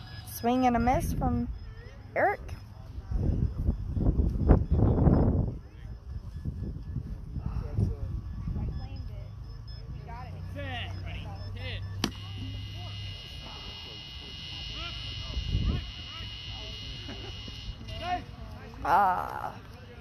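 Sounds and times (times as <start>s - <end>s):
faint ball beeps: 0.0s - 18.0s
steady electronic buzz: 10.5s - 18.2s.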